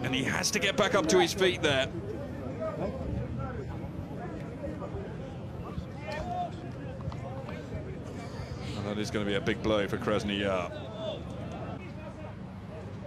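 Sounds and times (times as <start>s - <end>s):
steady low background noise: 0.0s - 13.0s.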